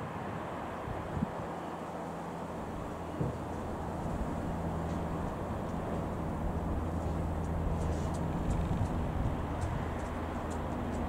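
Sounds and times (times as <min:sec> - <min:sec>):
light aircraft engine droning: 0:00.0 - 0:11.0.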